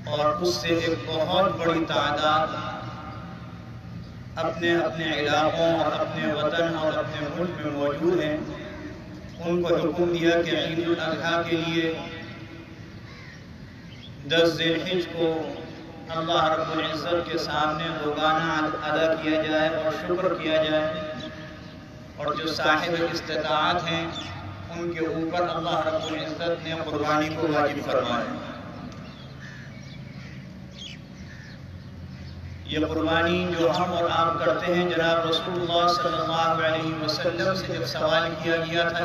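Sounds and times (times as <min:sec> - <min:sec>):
crows cawing: 0:12.7 - 0:14.2, 0:29.0 - 0:32.8.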